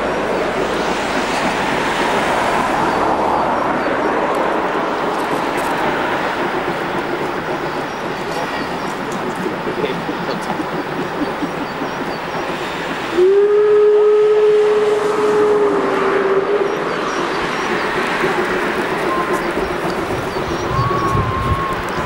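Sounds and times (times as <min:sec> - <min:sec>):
train running: 0:00.0 - 0:22.0
steam locomotive whistle: 0:13.1 - 0:17.2, 0:18.9 - 0:19.6, 0:20.6 - 0:22.0.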